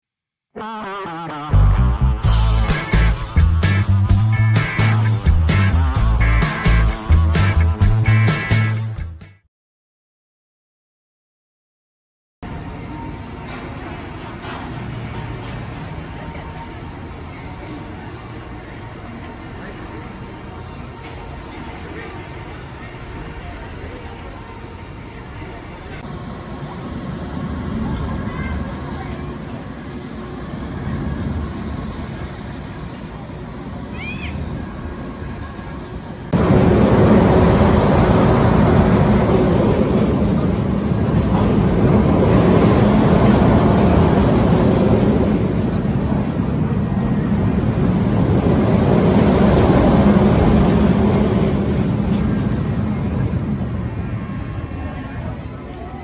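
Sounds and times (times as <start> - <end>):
thrill ride mechanical hum: 0.6 - 8.9, 12.4 - 56.0
swing carousel ride noise: 0.6 - 9.1, 12.4 - 56.0
voices: 12.5 - 56.0.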